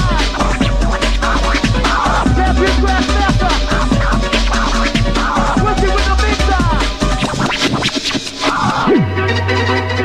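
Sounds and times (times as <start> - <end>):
hardcore dance music: 0.0 - 10.0.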